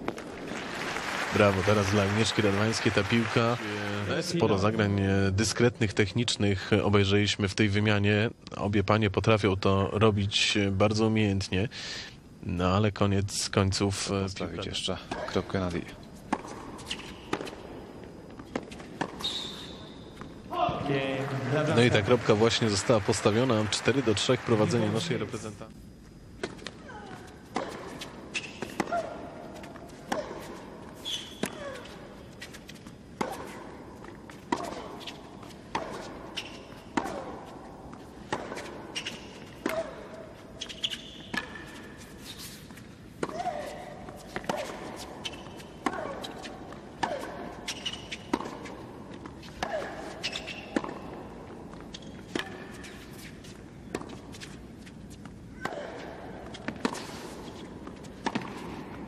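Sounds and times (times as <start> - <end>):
racket striking tennis ball: 16.3 - 20.8, 33.2 - 41.8, 42.7 - 53.2, 55.6 - 59.0.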